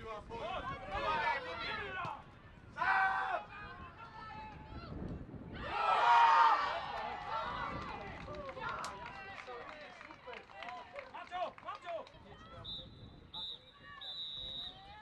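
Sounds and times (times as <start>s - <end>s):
players and spectators cheering: 5.6s - 12.5s.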